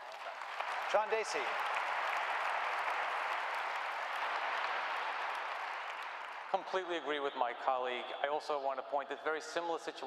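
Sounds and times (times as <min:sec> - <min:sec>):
audience applauding: 0:00.0 - 0:07.3.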